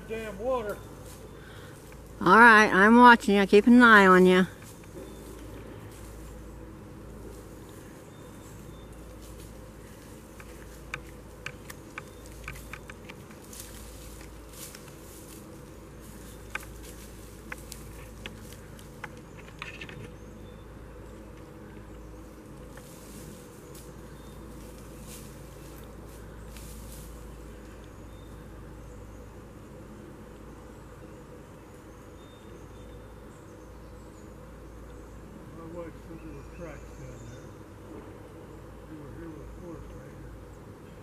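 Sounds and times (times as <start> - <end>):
insects buzzing: 0.0 - 41.0
footsteps through dry leaves: 13.4 - 19.0, 22.4 - 27.8.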